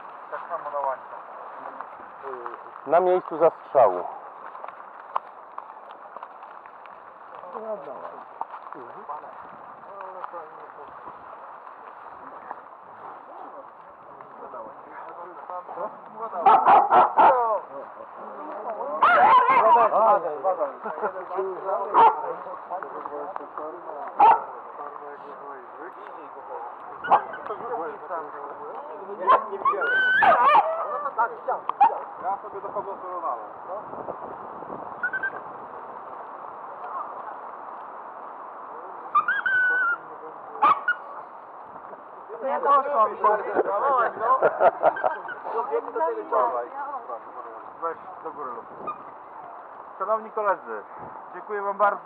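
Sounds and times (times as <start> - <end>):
outdoor background noise: 0.0 - 52.0
distant people talking: 7.4 - 34.4, 35.0 - 52.0
dog yipping: 16.4 - 17.4, 19.0 - 19.9, 21.9 - 22.3, 24.2 - 24.5, 27.0 - 27.5, 29.2 - 31.0, 35.0 - 35.4, 39.1 - 40.0, 40.6 - 41.2, 44.9 - 45.4
dog whining: 39.2 - 40.0.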